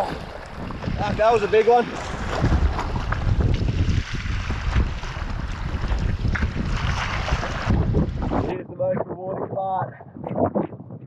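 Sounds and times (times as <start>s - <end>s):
choppy water splashing: 0.0s - 8.6s
strong wind buffeting microphone: 0.0s - 11.0s.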